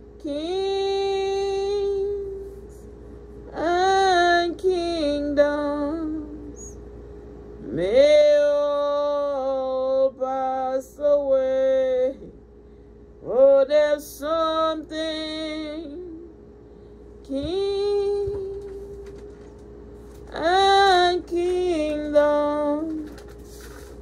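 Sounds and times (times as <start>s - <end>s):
woman singing worship song: 0.0s - 6.9s, 7.6s - 12.5s, 13.2s - 16.5s, 17.2s - 23.8s.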